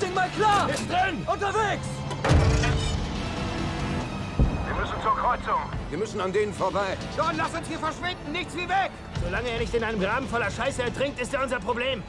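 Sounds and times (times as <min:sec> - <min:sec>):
film score: 0:00.0 - 0:12.0
heavy shell explosion: 0:04.3 - 0:05.0.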